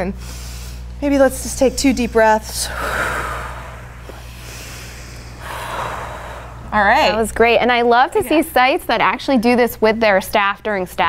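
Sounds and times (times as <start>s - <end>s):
deep breathing: 0.2s - 1.0s, 1.7s - 7.2s.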